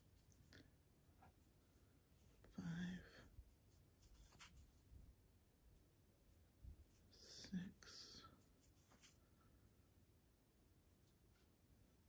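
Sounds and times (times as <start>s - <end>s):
yarn rustling on crochet hook: 0.0s - 5.0s, 8.2s - 9.2s
person speaking softly: 2.2s - 3.5s, 6.9s - 9.2s.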